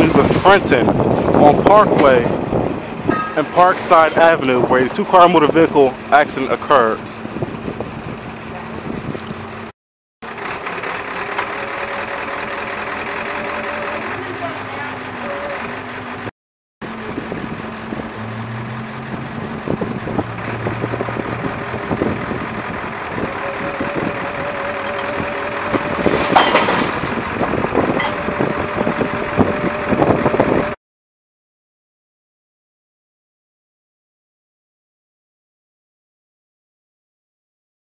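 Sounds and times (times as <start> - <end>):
street traffic passing: 0.0 - 30.8
truck engine humming: 0.0 - 30.8
metallic clanks: 25.8 - 28.3.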